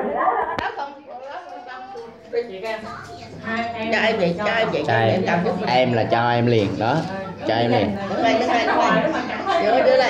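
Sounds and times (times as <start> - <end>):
several voices talking: 0.0 - 10.0.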